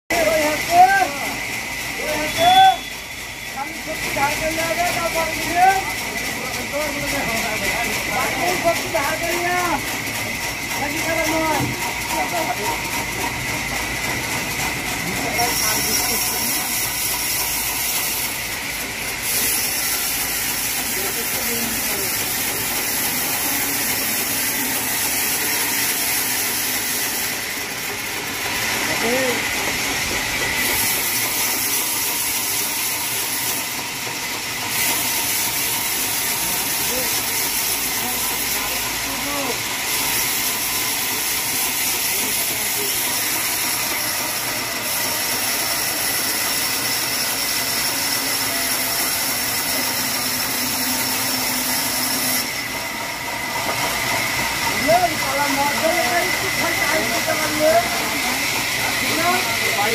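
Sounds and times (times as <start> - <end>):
band saw running: 0.1 - 59.9.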